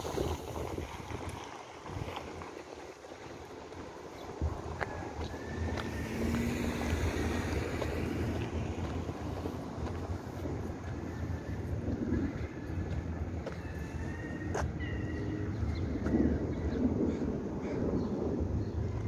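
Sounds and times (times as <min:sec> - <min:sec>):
city street traffic: 0:00.0 - 0:19.0
wind on microphone: 0:00.0 - 0:19.0.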